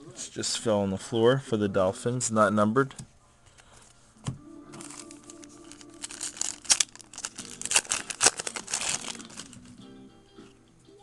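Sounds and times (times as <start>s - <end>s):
foil wrapper crinkling and tearing: 4.8s - 9.8s.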